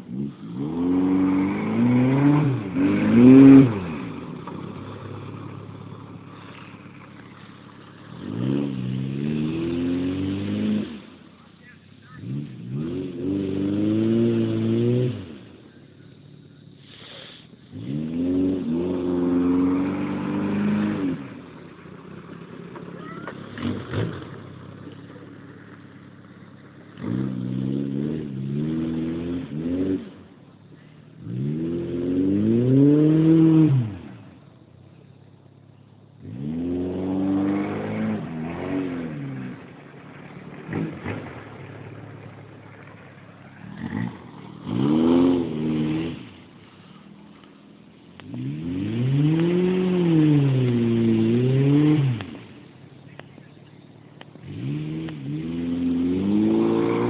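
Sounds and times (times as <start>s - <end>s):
car engine revving hard: 0.0s - 35.1s, 36.2s - 57.0s.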